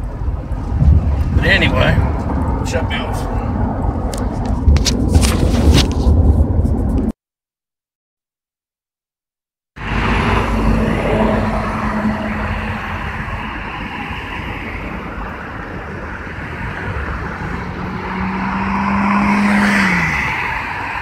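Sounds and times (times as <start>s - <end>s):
road traffic passing: 0.0s - 7.1s, 9.8s - 21.0s
tractor-trailer passing: 9.8s - 21.0s
vehicle hum passing by: 9.8s - 21.0s.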